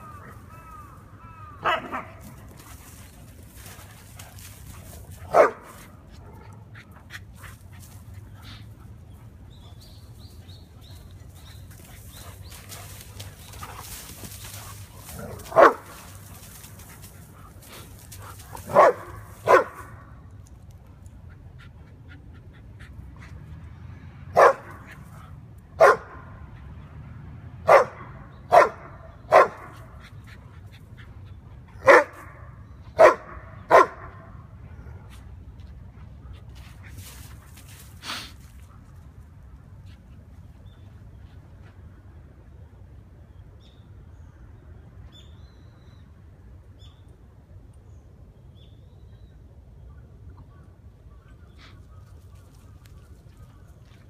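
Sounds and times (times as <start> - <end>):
dog barking: 1.6 - 2.2, 5.3 - 5.8, 15.5 - 15.8, 18.7 - 19.9, 24.4 - 24.7, 25.8 - 26.2, 27.7 - 29.8, 31.8 - 32.3, 33.0 - 34.2.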